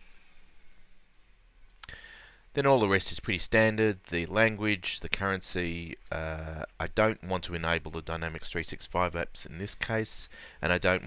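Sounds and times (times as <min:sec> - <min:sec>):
low hiss and hum: 0:00.0 - 0:11.0.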